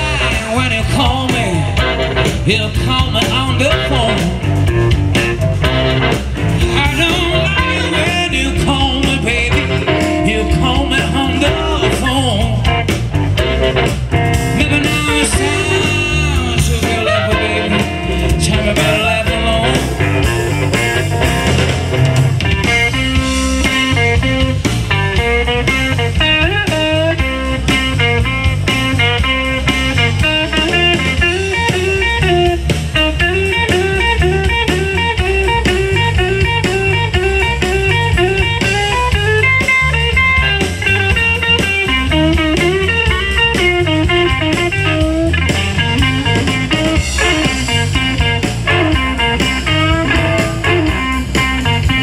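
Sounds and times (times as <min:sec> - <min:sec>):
electric guitar bent notes: 0:00.0 - 0:52.0
live blues band playing: 0:00.0 - 0:52.0.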